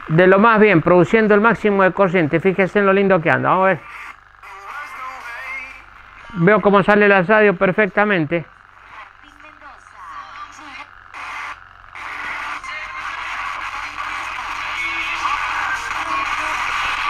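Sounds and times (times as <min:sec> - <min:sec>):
radio broadcast music and voices: 0:00.0 - 0:17.0.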